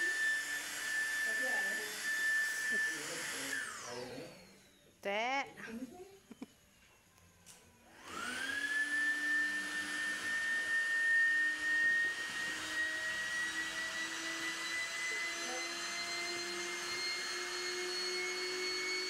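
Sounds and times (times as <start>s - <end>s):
electric air pump whining: 0.0s - 4.9s, 7.5s - 19.0s.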